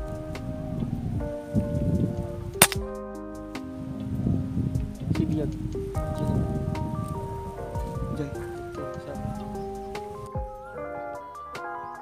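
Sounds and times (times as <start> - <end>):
background guitar music: 0.0 - 12.0
air rifle shot: 2.6 - 2.8.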